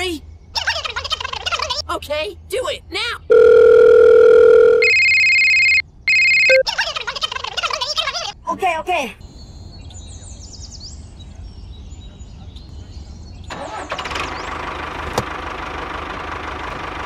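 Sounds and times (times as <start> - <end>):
gibberish cartoon voices: 0.0 - 2.0, 6.5 - 9.2
dial tone hum: 3.3 - 6.6
electronic telephone ring: 3.3 - 6.6.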